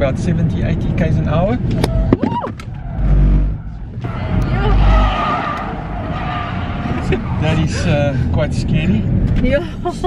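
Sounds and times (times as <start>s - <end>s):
heavy low rumbling: 1.8s - 10.0s
tyres squealing and skidding: 2.0s - 8.1s.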